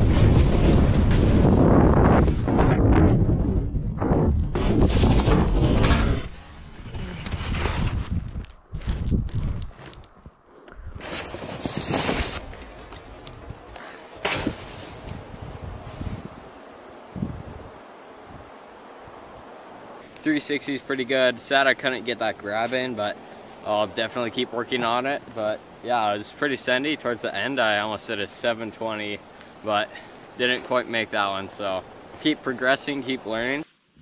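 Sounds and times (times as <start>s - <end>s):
wind rushing past microphone: 0.0s - 13.8s, 14.4s - 20.0s
snowboard scraping over snow: 4.5s - 10.0s, 11.0s - 13.3s, 14.2s - 15.3s
faint hiss: 13.9s - 34.0s.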